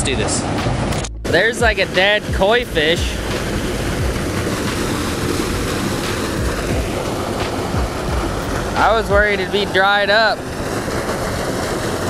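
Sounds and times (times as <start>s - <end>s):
water rushing from culvert: 0.0s - 12.0s.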